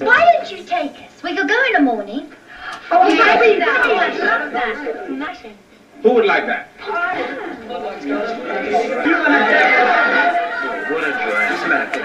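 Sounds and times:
teenagers chattering on television: 0.0s - 12.0s.

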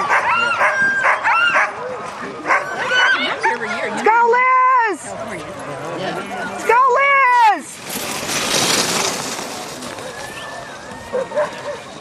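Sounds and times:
sled runners scraping over snow: 5.2s - 12.0s.

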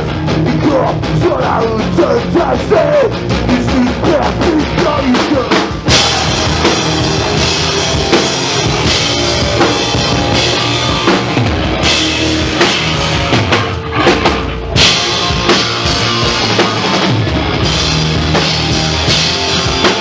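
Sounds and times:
bass guitar: 0.0s - 20.0s
electric guitars: 0.0s - 20.0s
drum kit with crashing cymbals: 1.5s - 20.0s.

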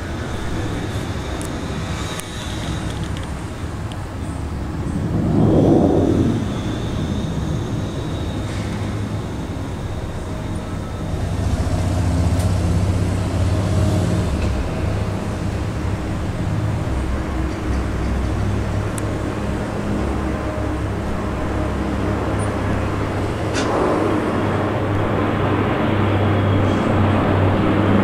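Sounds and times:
turboprop aircraft drone: 0.0s - 28.0s.

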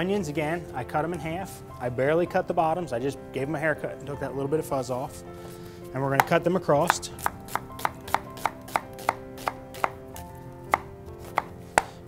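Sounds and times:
knife chopping on cutting board: 6.2s - 10.0s, 10.7s - 12.0s.

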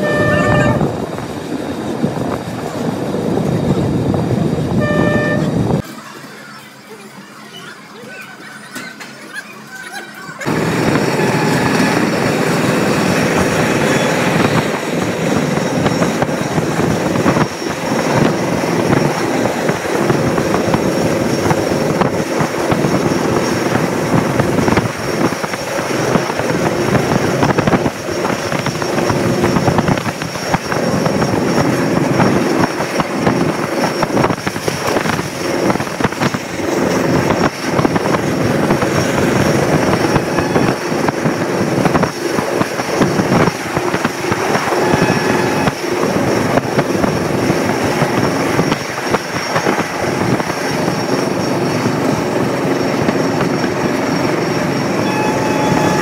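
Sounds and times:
train wheels rumbling on rails: 0.0s - 56.0s.

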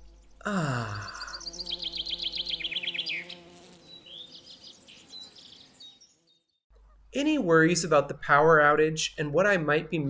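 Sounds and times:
bird chirping trill: 0.0s - 8.2s.

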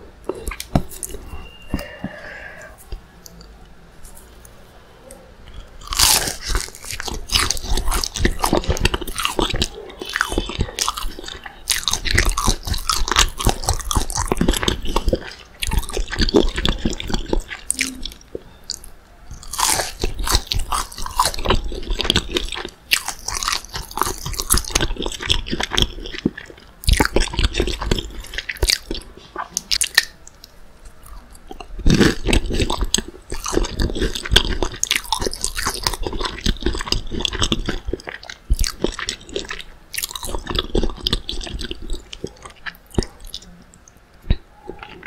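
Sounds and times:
crunchy food chewing: 0.0s - 4.5s, 5.5s - 45.0s.

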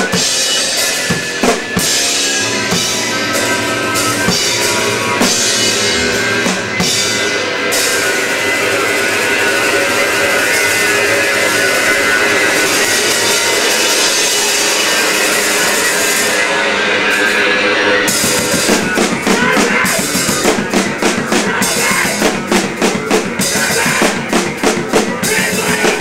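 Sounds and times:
cymbals: 0.0s - 26.0s
electric guitar: 0.0s - 26.0s
pounding drum kit: 0.0s - 26.0s
rock band playing: 0.0s - 26.0s.

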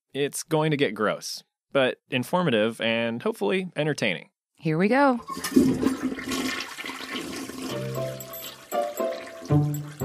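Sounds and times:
toilet flushing: 5.2s - 10.0s.

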